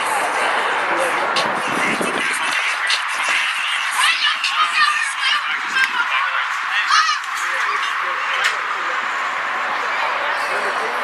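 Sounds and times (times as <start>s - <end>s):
distant voices shouting: 0.0s - 11.0s.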